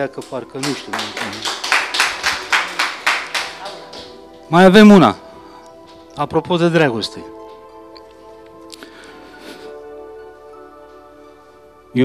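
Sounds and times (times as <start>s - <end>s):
audience applauding: 0.1s - 4.3s.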